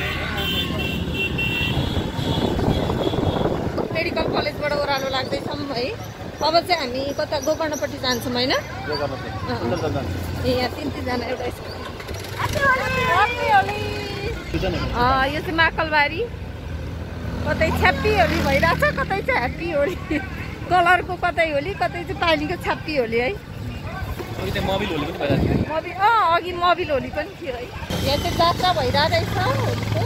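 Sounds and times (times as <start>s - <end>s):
road and wind noise: 0.0s - 30.0s
motor scooter rumble: 10.4s - 14.8s, 27.6s - 30.0s
women calling out: 12.4s - 14.4s
women laughing: 18.5s - 20.7s
motorcycle engine running: 27.9s - 30.0s.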